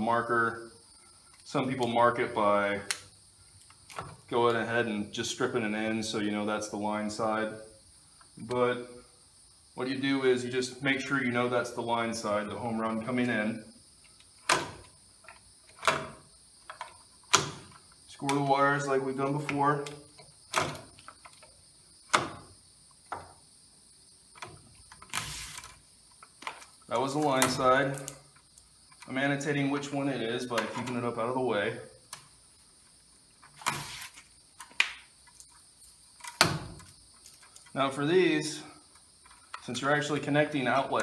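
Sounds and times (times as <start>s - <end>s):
electrical cable wires scraping: 25.0s - 25.8s, 33.5s - 34.4s.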